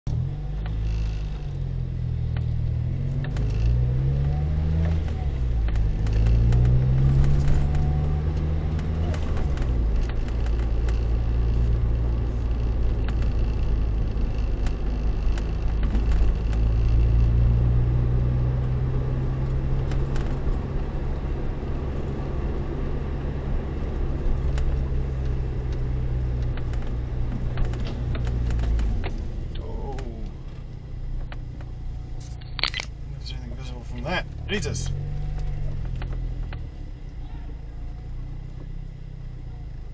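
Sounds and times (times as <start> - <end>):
car engine accelerating: 0.1 - 39.9
road noise inside car: 0.1 - 39.9.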